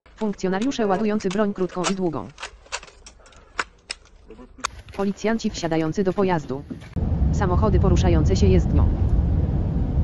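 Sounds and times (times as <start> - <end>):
metallic clicks of guns loading: 0.1 - 5.0.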